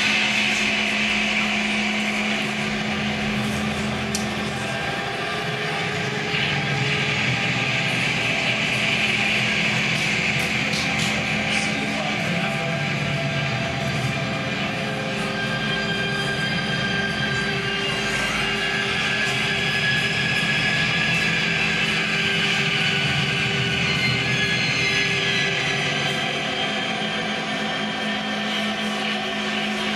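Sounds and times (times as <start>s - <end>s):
electronic drone music: 0.0s - 29.9s.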